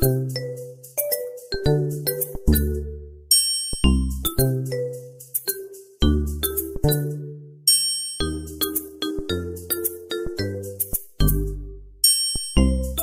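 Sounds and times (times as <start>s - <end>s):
bell-like chiming notes: 0.0s - 13.0s.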